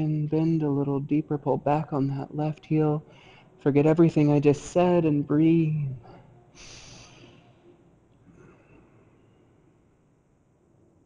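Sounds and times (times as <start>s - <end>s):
man breathing out: 6.6s - 7.5s.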